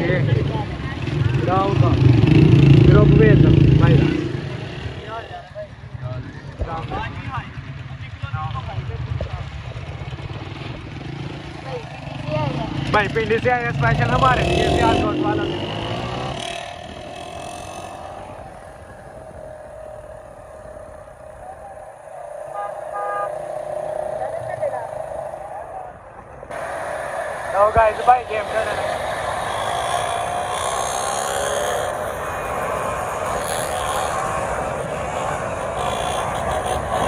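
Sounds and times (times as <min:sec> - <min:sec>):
small motorcycles running: 0:00.0 - 0:37.0.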